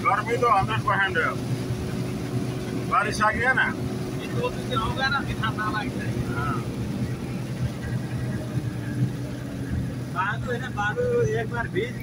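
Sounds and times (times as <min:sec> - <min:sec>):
vehicle engine and road noise: 0:00.0 - 0:12.0.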